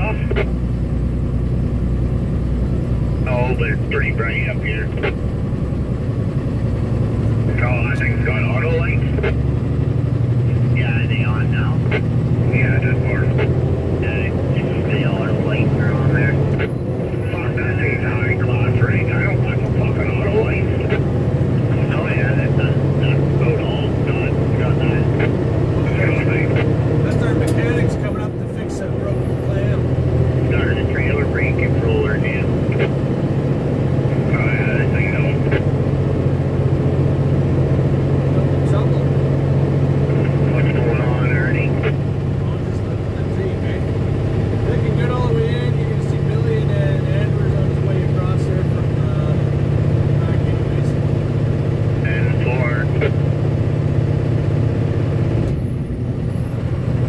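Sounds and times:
two-way radio chatter: 0:00.0 - 0:00.6, 0:03.2 - 0:05.2, 0:07.4 - 0:09.5, 0:10.4 - 0:33.2, 0:34.0 - 0:35.8, 0:38.2 - 0:39.2, 0:39.9 - 0:51.2, 0:51.9 - 0:53.4
truck engine and tyres drone: 0:00.0 - 0:57.0.

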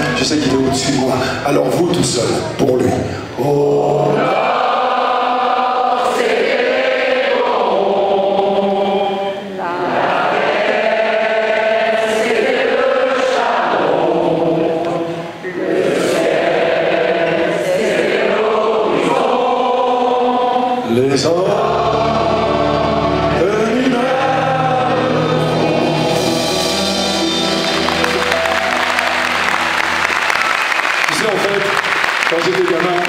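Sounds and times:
audience singing in unison: 0:03.3 - 0:31.1.

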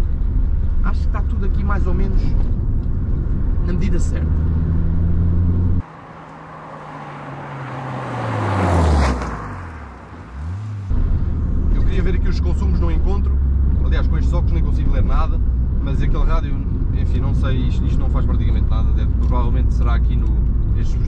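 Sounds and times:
car engine drone from inside: 0:00.0 - 0:08.8
car passing at speed: 0:03.1 - 0:11.6.

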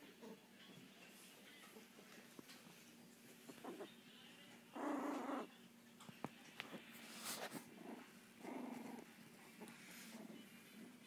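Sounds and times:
puppy growling: 0:03.6 - 0:03.9, 0:04.7 - 0:05.5, 0:07.6 - 0:11.0.

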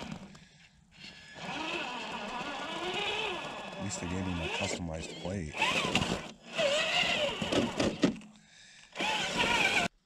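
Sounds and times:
electric motor whining: 0:01.4 - 0:08.1, 0:08.9 - 0:09.9.

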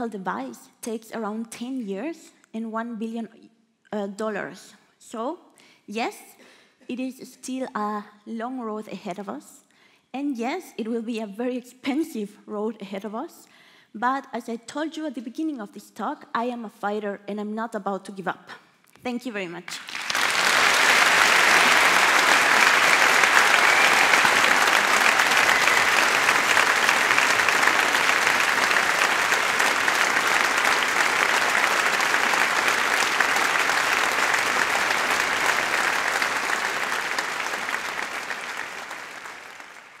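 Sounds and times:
large audience applauding: 0:19.7 - 0:40.0.

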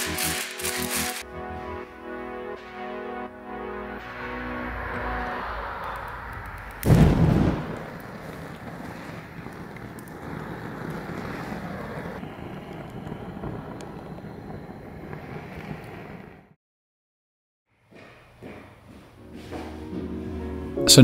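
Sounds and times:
gas flames burning: 0:04.8 - 0:16.6.

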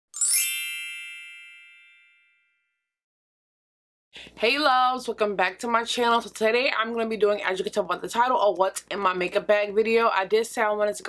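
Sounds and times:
bright chime: 0:00.1 - 0:02.8.

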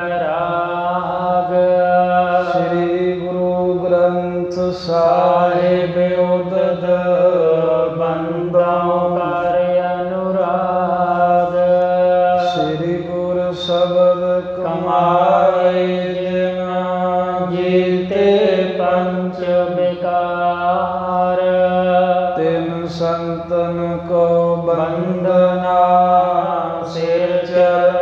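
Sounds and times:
man chanting: 0:00.0 - 0:28.0.

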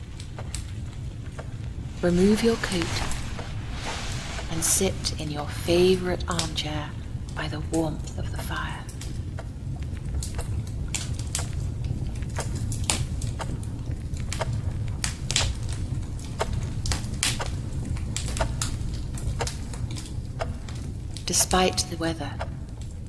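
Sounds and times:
low fire rumble: 0:00.0 - 0:23.0
fire pops and snaps: 0:00.2 - 0:06.6, 0:07.3 - 0:21.4.

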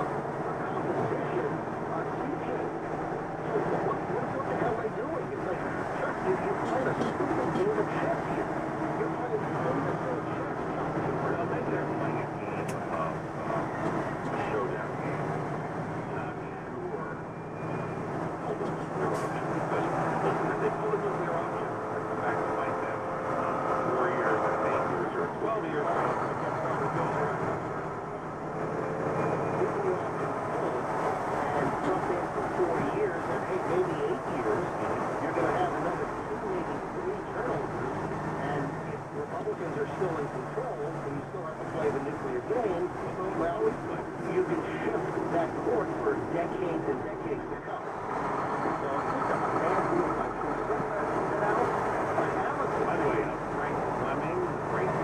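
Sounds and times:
truck engine and road noise: 0:00.0 - 0:55.0
indistinct voice from radio: 0:31.4 - 0:47.9.

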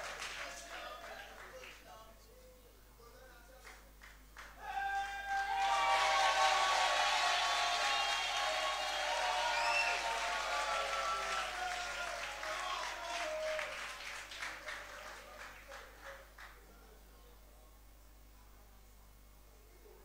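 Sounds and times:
audience applauding: 0:00.0 - 0:01.8, 0:04.0 - 0:16.6.

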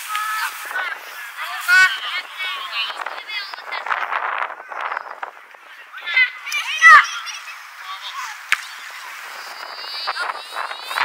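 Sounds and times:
wind on microphone: 0:00.0 - 0:06.4, 0:08.2 - 0:11.0
children shouting: 0:05.8 - 0:11.0.

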